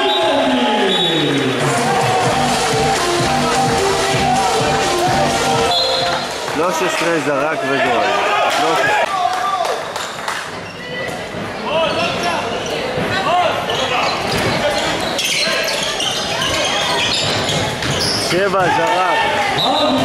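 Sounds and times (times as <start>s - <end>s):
shoes squeaking: 13.7s - 18.6s.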